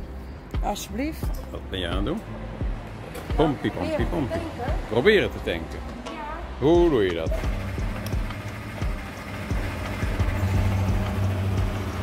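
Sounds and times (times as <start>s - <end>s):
fuel pump humming: 6.7s - 12.0s.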